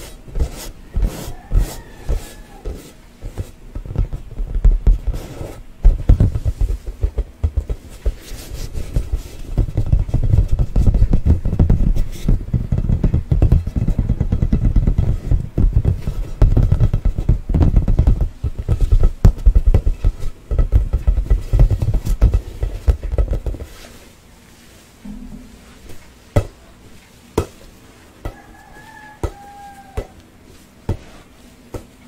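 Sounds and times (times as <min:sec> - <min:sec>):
fingers tapping on a play ball: 0:05.8 - 0:08.2, 0:08.9 - 0:23.7, 0:28.2 - 0:30.3.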